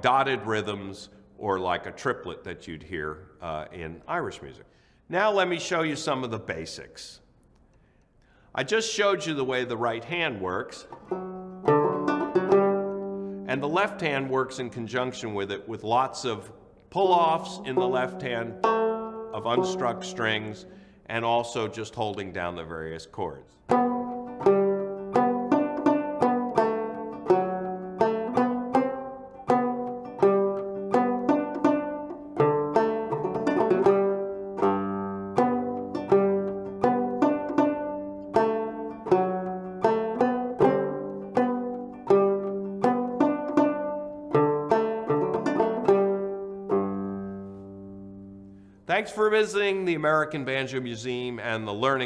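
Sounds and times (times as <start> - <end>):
banjo notes played: 0.0 - 2.8, 8.8 - 22.7, 23.6 - 52.0.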